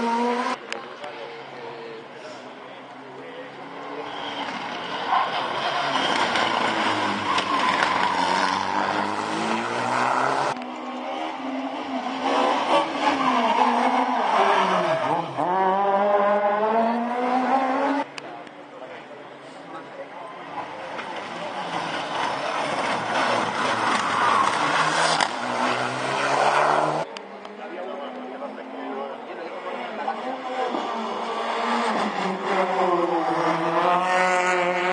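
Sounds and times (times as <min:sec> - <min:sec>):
car engine accelerating hard: 0:03.8 - 0:18.1, 0:21.0 - 0:34.9.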